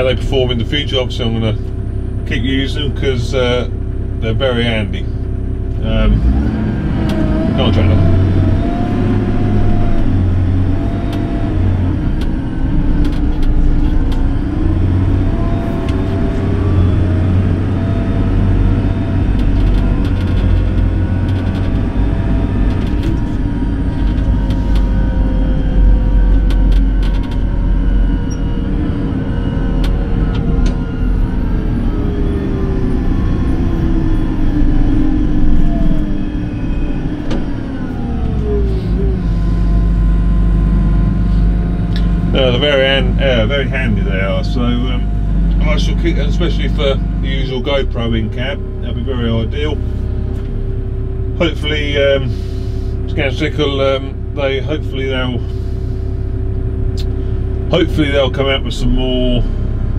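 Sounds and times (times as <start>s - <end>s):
tractor engine rumble and whine: 0.0s - 59.9s.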